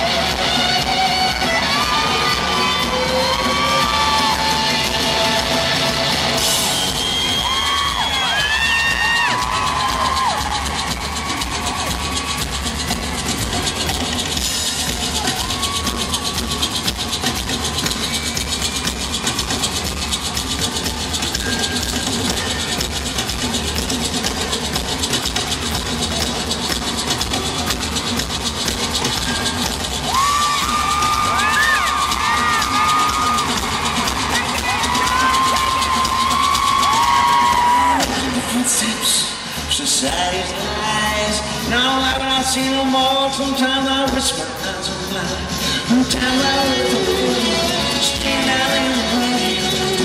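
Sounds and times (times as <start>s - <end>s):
crowd cheering and shouting: 0.0s - 50.0s
live rock music: 0.0s - 50.0s
maracas shaking: 0.4s - 38.9s.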